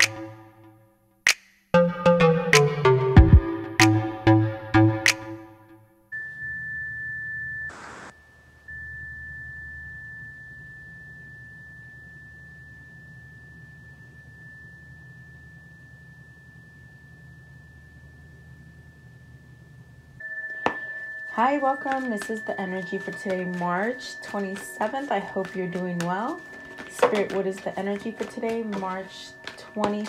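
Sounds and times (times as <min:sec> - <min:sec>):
tuning fork ringing: 0:06.0 - 0:30.0
low hum: 0:07.7 - 0:21.0.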